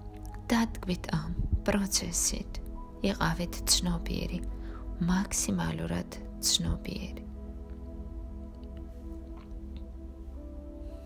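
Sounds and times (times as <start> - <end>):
gentle ambient music: 0.0 - 11.0.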